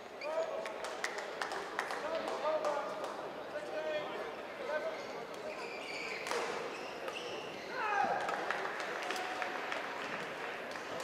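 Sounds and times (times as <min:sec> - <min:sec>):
murmur of voices: 0:00.0 - 0:11.0
sports shoes squeaking: 0:05.4 - 0:07.8.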